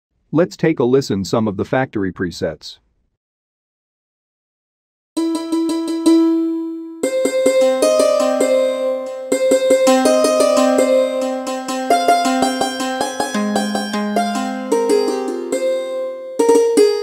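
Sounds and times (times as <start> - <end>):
santoor melody: 5.2 - 17.0.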